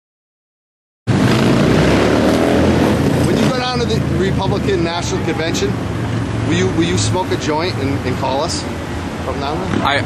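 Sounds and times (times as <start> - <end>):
street traffic engines rumbling: 1.1 - 10.0.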